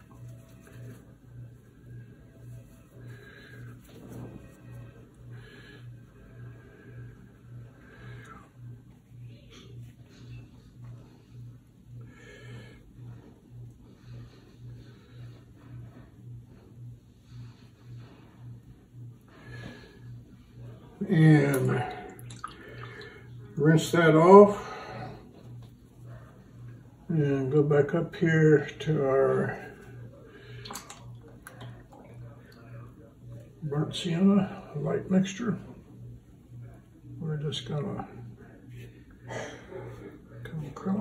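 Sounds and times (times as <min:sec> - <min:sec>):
paintbrush dabbing and stroking paper: 0:00.0 - 0:04.8
low pulsing hum: 0:00.0 - 0:41.0.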